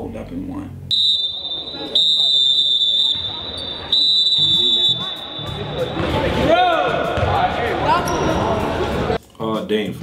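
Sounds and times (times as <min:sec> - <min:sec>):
players chattering: 0:00.9 - 0:09.2.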